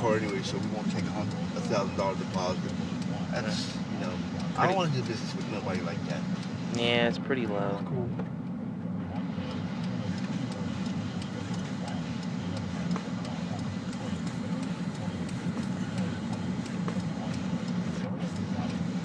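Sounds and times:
car engine and tyres droning: 0.0 - 19.0.

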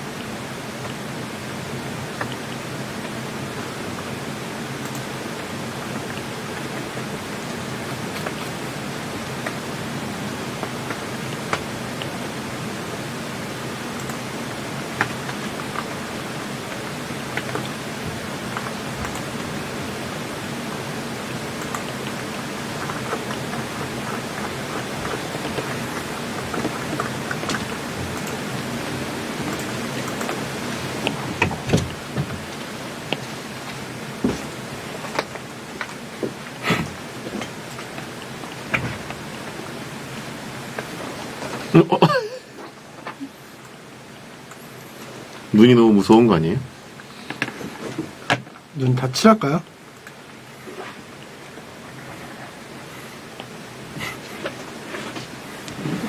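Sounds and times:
steady hiss: 0.0 - 56.0.

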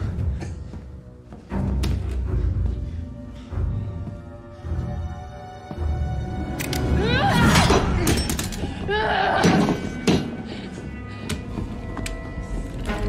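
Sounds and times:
tense film score: 0.0 - 13.0
pained cries: 6.9 - 10.2.

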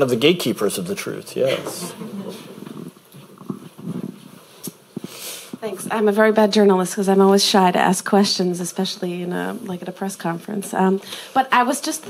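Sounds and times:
low murmur or chuckle: 1.4 - 3.0
microphone handling clicks: 2.5 - 5.6.

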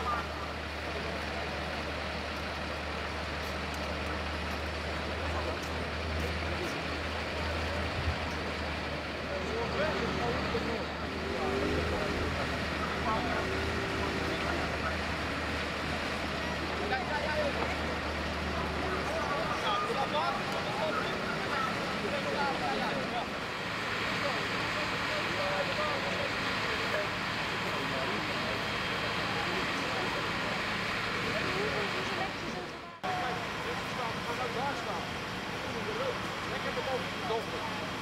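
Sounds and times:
fire engine motor droning: 0.0 - 38.0
rushing of fire and water jets: 0.0 - 38.0.

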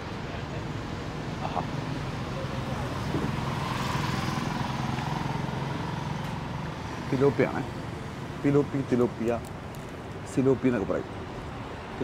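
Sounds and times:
vehicle engine passing: 1.8 - 7.5.

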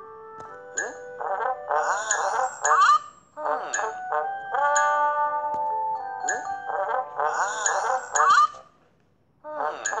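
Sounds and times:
cartoon pitch-bending sounds: 0.8 - 5.4, 6.3 - 8.6.

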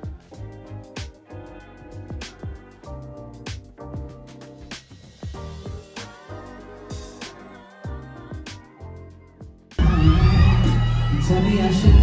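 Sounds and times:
r and b concert music: 0.0 - 12.0
crowd cheering: 9.8 - 12.0.

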